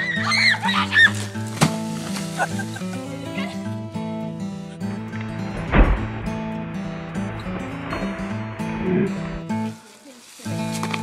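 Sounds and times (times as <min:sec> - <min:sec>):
background music: 0:00.0 - 0:11.0
tree crashing to ground: 0:00.3 - 0:03.5, 0:05.2 - 0:11.0.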